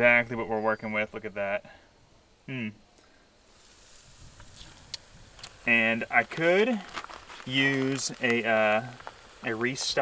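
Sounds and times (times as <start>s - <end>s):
fish sizzling in hot oil: 3.4s - 5.7s, 7.4s - 10.0s.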